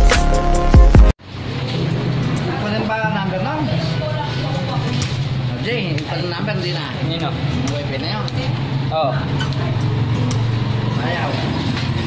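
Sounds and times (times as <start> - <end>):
people talking: 2.4 - 9.8.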